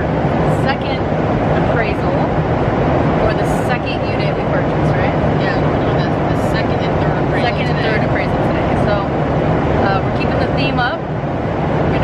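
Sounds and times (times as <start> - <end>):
jet cabin drone: 0.0 - 12.0.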